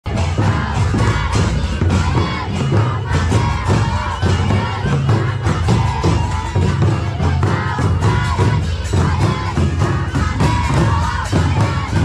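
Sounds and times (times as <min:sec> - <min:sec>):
group singing and calling out: 0:00.1 - 0:12.0.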